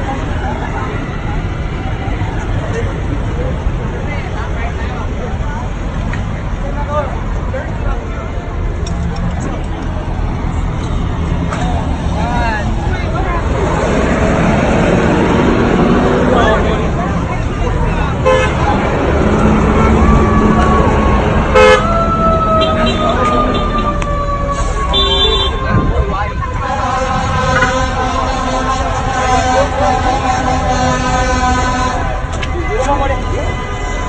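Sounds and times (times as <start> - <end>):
traffic rumble: 0.0 - 34.0
raised voices: 11.4 - 34.0
car horns honking: 17.4 - 19.0, 21.4 - 24.0, 24.6 - 34.0.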